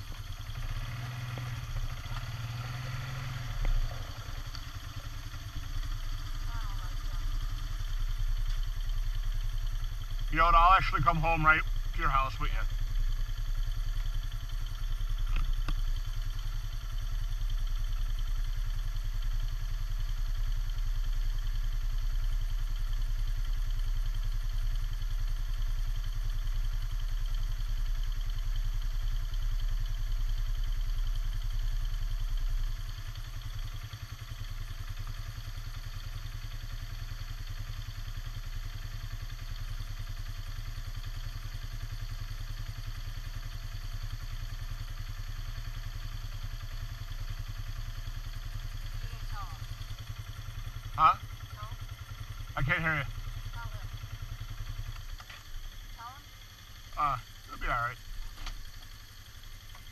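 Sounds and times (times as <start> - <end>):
engine idling: 0.0 - 59.9.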